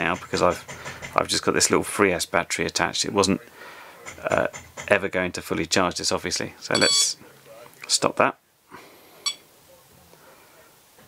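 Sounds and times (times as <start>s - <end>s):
short electronic beep: 6.8s - 7.2s, 9.2s - 9.4s.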